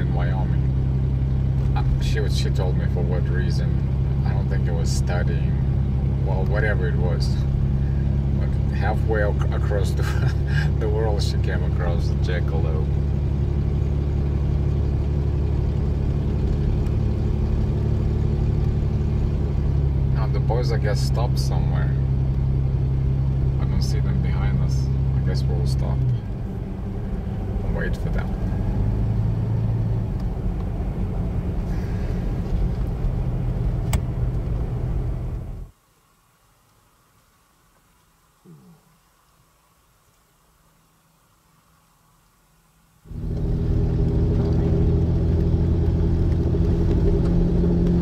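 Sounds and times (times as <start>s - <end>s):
car engine and tyre drone: 0.0s - 35.8s, 43.1s - 48.0s
low hum: 0.0s - 35.8s, 42.6s - 48.0s.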